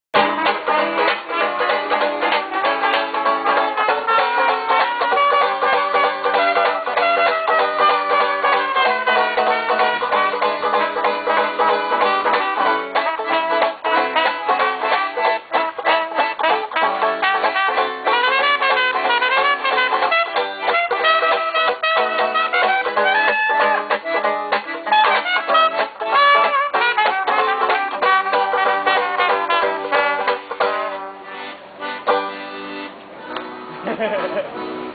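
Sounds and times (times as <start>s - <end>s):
brass horn sliding melody: 0.2s - 24.0s, 24.8s - 31.6s
banjo strumming: 0.2s - 34.9s
short laugh: 33.8s - 34.6s.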